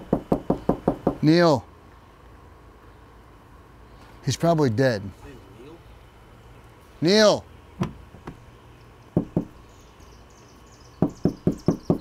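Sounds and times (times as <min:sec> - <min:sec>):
knocking on a door: 0:00.0 - 0:01.2, 0:07.8 - 0:08.4, 0:09.2 - 0:09.6, 0:11.0 - 0:12.0.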